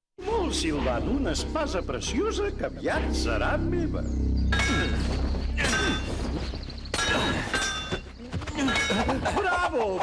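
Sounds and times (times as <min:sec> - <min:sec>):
metal blades clashing: 0:04.5 - 0:06.2, 0:06.9 - 0:09.4.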